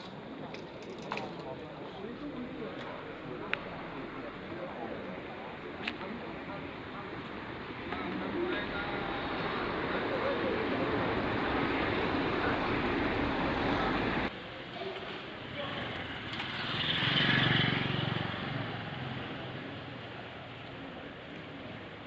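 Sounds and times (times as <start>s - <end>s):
street noise with voices: 0.0s - 22.0s
motorcycle engine passing: 15.7s - 19.7s.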